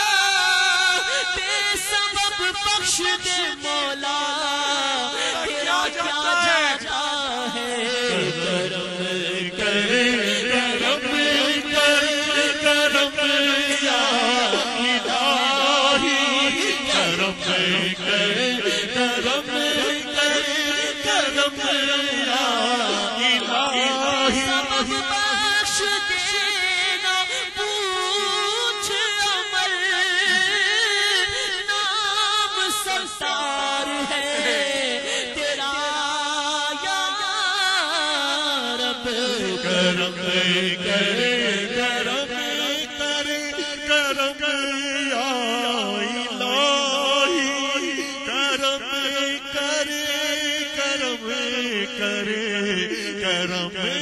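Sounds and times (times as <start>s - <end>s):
men chanting and wailing: 0.0s - 54.0s.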